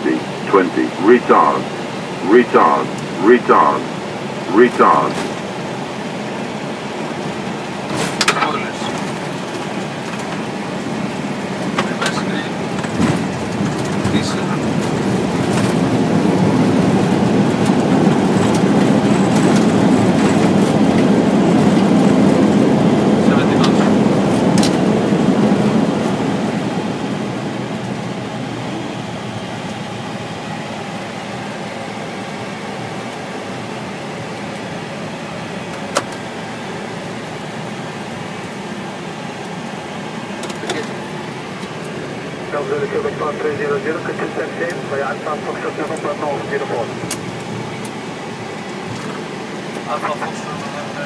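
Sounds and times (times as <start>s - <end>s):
airliner engines and wheels rumbling: 0.0s - 51.0s.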